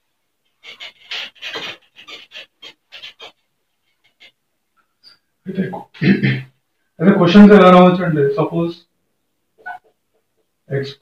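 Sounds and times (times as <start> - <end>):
duster rubbing whiteboard: 0.6 - 3.4.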